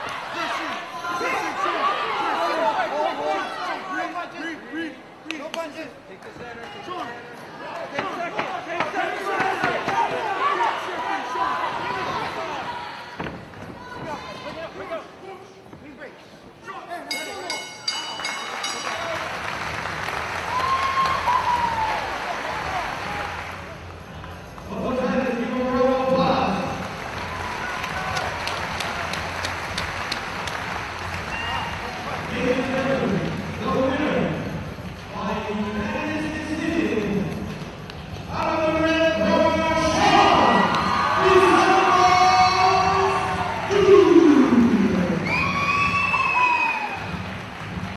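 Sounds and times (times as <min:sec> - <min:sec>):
crowd shouting and yelling: 0:00.0 - 0:15.7, 0:20.4 - 0:23.9, 0:38.3 - 0:47.4
bell ringing with quick strikes: 0:17.1 - 0:19.2.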